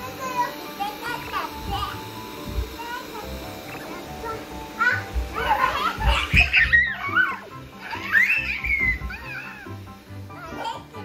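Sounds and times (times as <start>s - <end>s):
children squealing: 4.8s - 9.8s.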